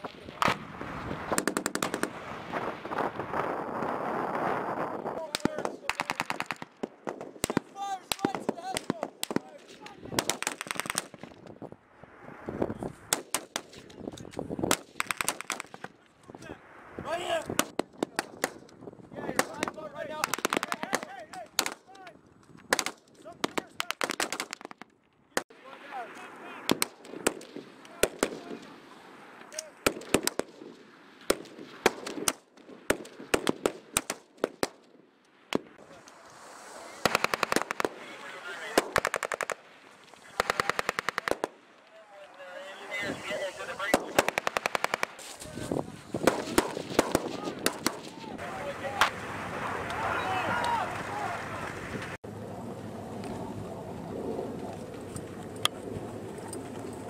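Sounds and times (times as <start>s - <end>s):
rifle shots: 1.4s - 2.2s, 5.4s - 11.3s, 14.7s - 15.8s, 19.4s - 21.8s, 22.7s - 24.8s, 29.8s - 34.8s, 37.0s - 38.0s, 38.7s - 39.7s, 40.4s - 41.6s, 43.8s - 45.3s, 46.2s - 48.2s
automatic gunfire bursts: 38.8s - 39.6s, 40.4s - 41.5s, 44.0s - 45.2s.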